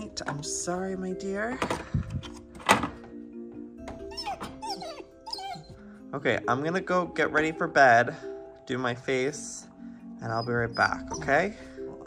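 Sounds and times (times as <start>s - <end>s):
background music: 0.0s - 12.0s
puppy whining: 3.9s - 5.9s, 10.2s - 11.5s.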